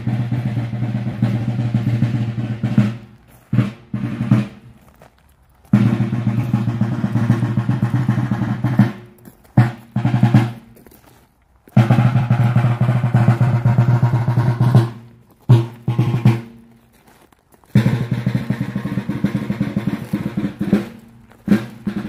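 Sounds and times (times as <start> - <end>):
snare drum march rolls: 0.0 - 11.0, 11.7 - 16.8, 17.7 - 22.0.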